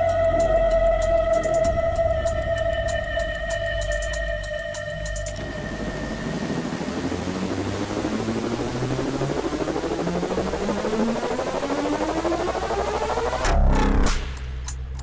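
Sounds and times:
car engine accelerating: 0:05.2 - 0:14.7.

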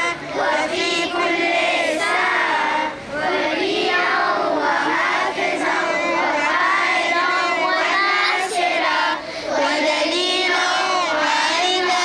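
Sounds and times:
children singing together: 0:00.0 - 0:12.0.

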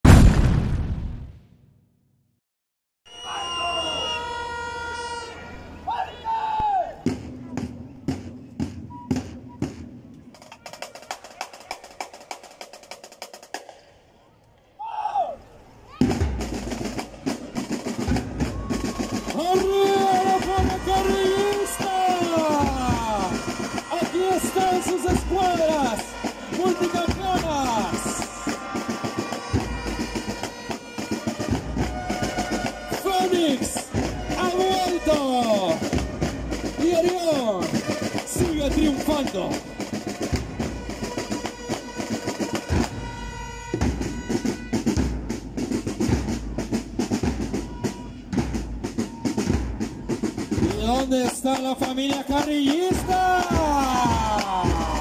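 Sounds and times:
marching band playing: 0:03.1 - 0:06.4, 0:07.0 - 0:13.9, 0:15.9 - 0:55.0.

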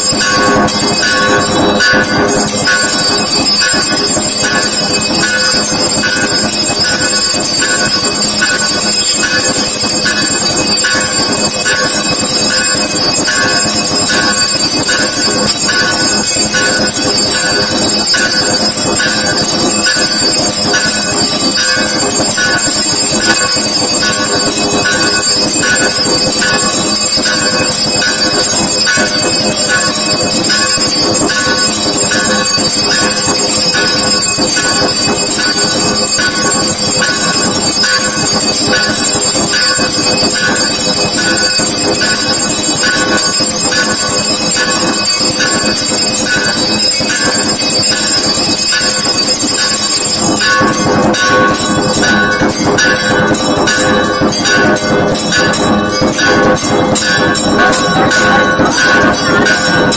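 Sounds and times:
temple bells clanging: 0:00.0 - 0:59.9.

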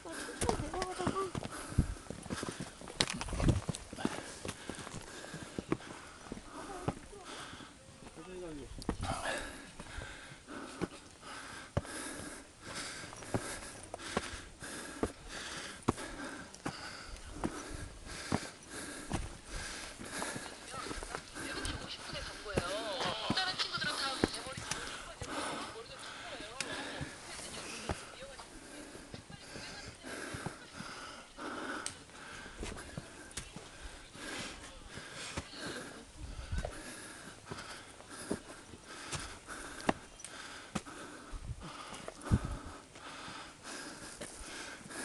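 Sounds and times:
footsteps on rocky trail: 0:00.0 - 0:45.0
people talking indistinctly: 0:20.1 - 0:36.0.

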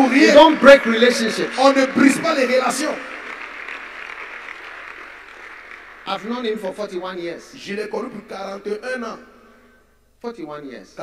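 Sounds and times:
crowd clapping: 0:00.0 - 0:07.5.

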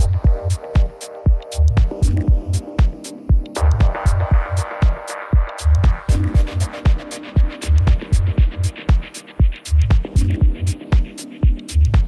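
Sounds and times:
techno music: 0:00.0 - 0:12.0.

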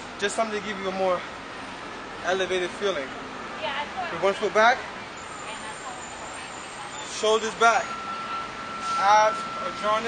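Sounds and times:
city road traffic hum: 0:00.0 - 0:10.0.

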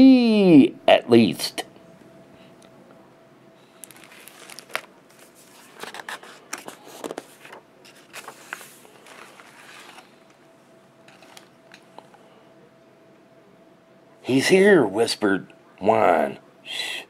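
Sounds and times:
book pages rustling: 0:03.8 - 0:10.4, 0:11.0 - 0:11.9.

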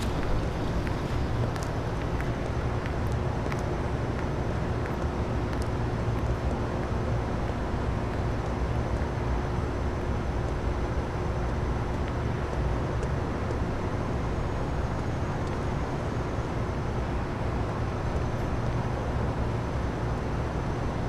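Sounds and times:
distant city traffic rumble: 0:00.0 - 0:21.0
faint constant hum: 0:00.0 - 0:21.0.

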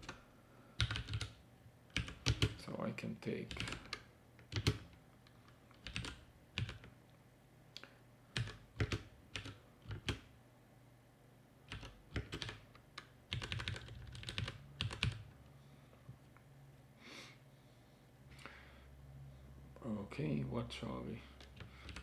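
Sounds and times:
typing on computer keyboard: 0:00.0 - 0:00.2, 0:00.8 - 0:02.6, 0:03.5 - 0:05.0, 0:05.7 - 0:06.9, 0:08.4 - 0:10.3, 0:11.7 - 0:15.3, 0:21.4 - 0:22.0.

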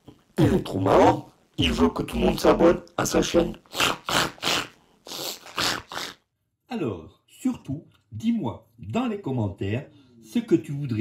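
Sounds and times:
person making pig-like noises: 0:03.4 - 0:06.2.

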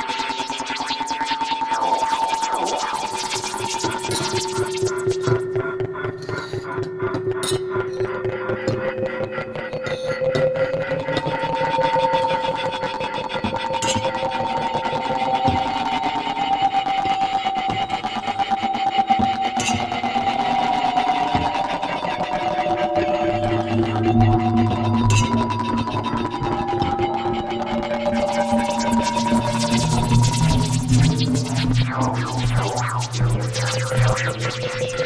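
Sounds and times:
rapidly pulsing electronic texture: 0:00.0 - 0:35.0
low hum: 0:27.3 - 0:35.0.

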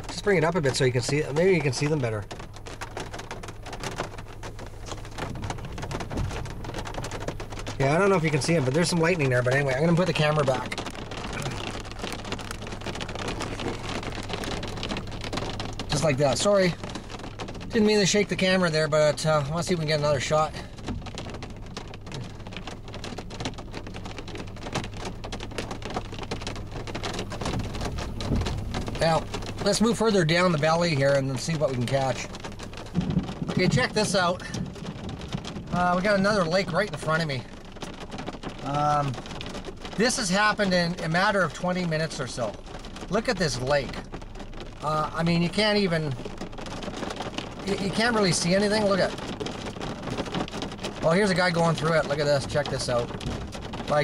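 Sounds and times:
low rumble: 0:00.0 - 0:37.6
rain on car windshield: 0:00.0 - 0:54.0.

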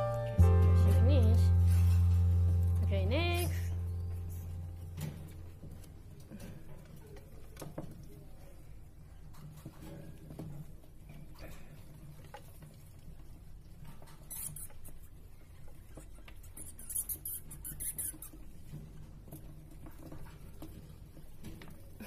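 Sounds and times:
faint low hum: 0:00.0 - 0:22.0
rodents rustling in sand: 0:00.0 - 0:22.0.

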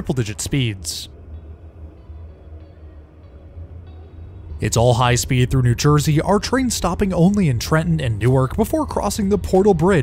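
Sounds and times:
faint train running noise: 0:00.0 - 0:10.0
passenger train rumbling: 0:00.0 - 0:10.0.

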